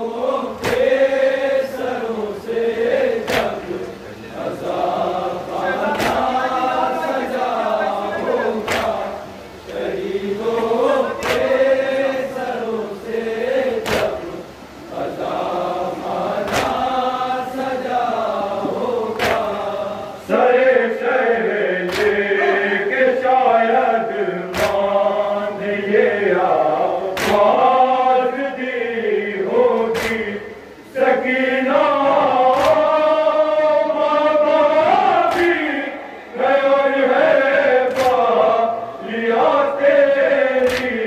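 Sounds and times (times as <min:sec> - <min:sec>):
men chanting in unison: 0:00.0 - 0:41.0
chest-beating slaps: 0:00.6 - 0:00.9, 0:03.2 - 0:03.6, 0:05.9 - 0:06.3, 0:08.6 - 0:09.0, 0:11.2 - 0:11.5, 0:13.8 - 0:14.2, 0:16.5 - 0:16.8, 0:19.2 - 0:19.5, 0:21.9 - 0:22.2, 0:24.5 - 0:24.8, 0:27.2 - 0:27.5, 0:29.9 - 0:30.3, 0:32.5 - 0:32.9, 0:35.3 - 0:35.6, 0:37.9 - 0:38.3, 0:40.6 - 0:41.0.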